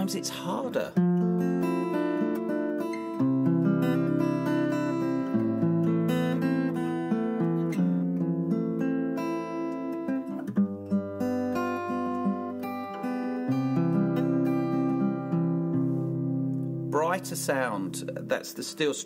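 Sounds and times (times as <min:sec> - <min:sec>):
acoustic guitar chords: 0:00.0 - 0:19.0.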